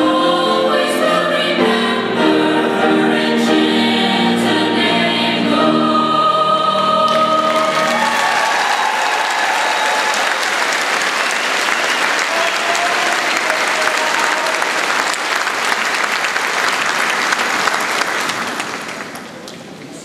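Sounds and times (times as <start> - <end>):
audience applauding: 7.1 - 19.8.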